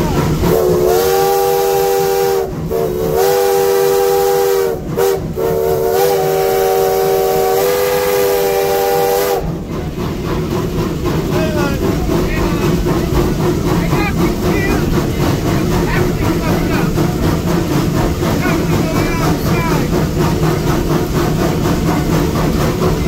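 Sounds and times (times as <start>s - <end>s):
locomotive hiss and rumble: 0.0s - 23.0s
steam whistle blasts: 0.5s - 9.5s.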